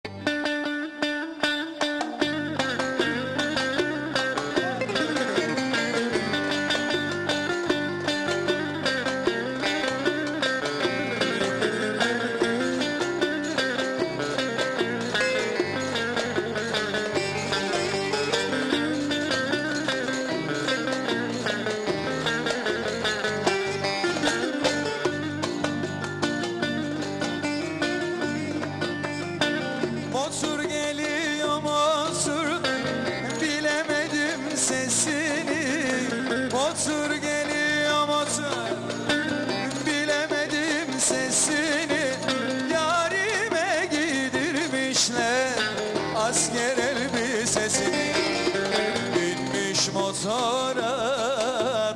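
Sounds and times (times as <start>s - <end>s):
plucked lute folk dance tune: 0.0s - 51.9s
hand drum beat: 1.7s - 51.9s.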